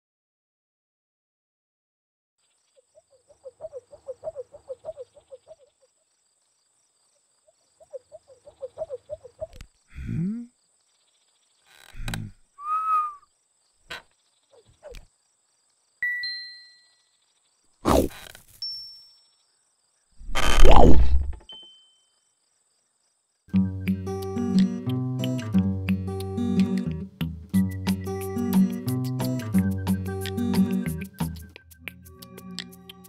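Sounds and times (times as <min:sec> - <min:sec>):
cartoon chirping: 0:20.2 - 0:21.3
falling tone: 0:20.2 - 0:21.4.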